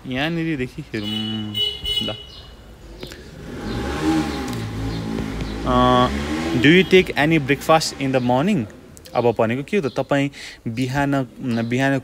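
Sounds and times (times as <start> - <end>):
motor vehicle passing: 1.0 - 9.0.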